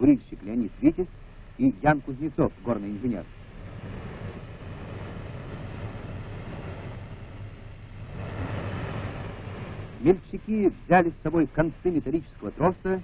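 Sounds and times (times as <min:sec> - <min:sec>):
gas gusher roaring: 0:03.3 - 0:11.0.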